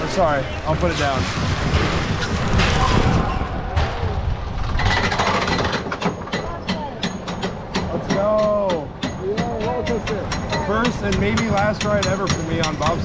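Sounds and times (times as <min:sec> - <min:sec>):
coaster wheels rumbling on track: 0:00.0 - 0:13.0.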